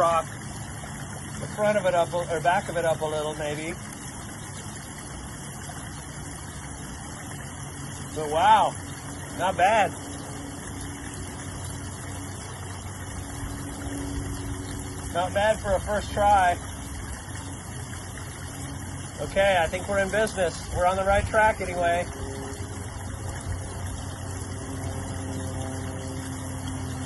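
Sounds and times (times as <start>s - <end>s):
low pump hum: 0.0s - 27.0s
waterfall splashing over rocks: 0.0s - 27.0s.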